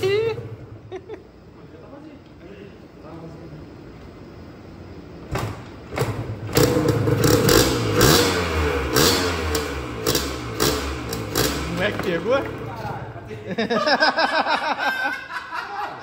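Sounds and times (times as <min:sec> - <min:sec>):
two-stroke engine starting and revving: 0:06.0 - 0:12.8.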